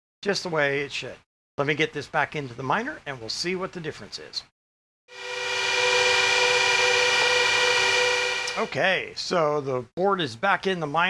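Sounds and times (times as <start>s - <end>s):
cooling fans whining: 5.2s - 8.8s.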